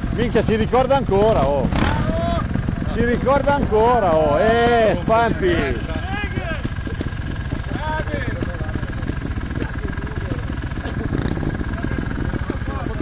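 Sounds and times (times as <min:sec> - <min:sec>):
motorcycle engine idling: 0:00.0 - 0:13.0.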